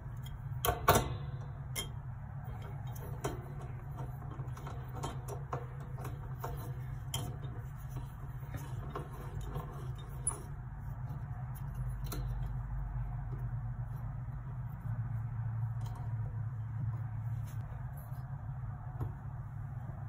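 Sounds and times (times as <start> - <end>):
steady low hum: 0.0 - 20.0.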